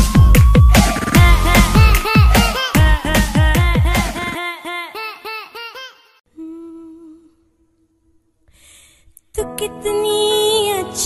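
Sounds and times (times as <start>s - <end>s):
pop song: 0.0s - 5.0s, 9.4s - 11.0s.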